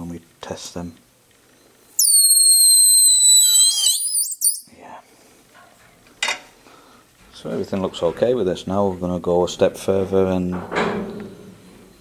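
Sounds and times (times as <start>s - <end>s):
compressed air escaping whistle: 2.0s - 4.7s.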